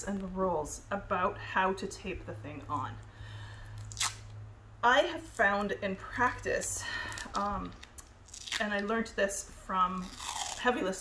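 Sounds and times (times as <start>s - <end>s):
duct tape ripping: 3.7s - 4.4s, 7.2s - 8.9s, 10.0s - 11.0s.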